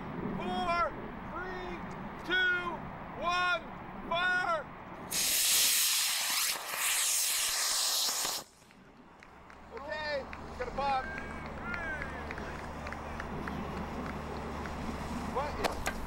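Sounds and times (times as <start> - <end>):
rocket motor hissing: 5.1 - 8.6.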